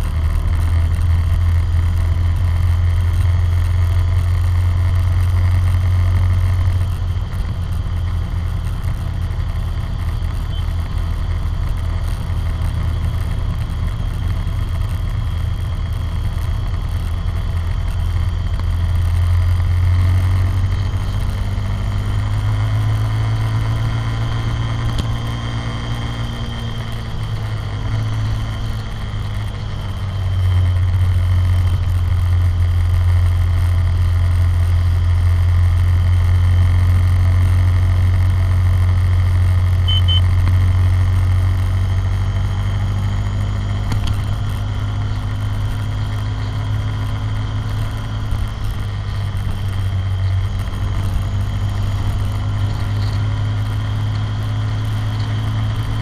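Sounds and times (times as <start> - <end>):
quad bike engine running: 0.0 - 56.0.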